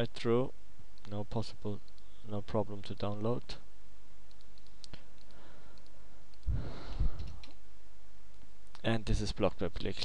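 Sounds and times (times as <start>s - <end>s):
faint steady hum: 0.0s - 10.0s
computer mouse clicks: 4.3s - 7.6s.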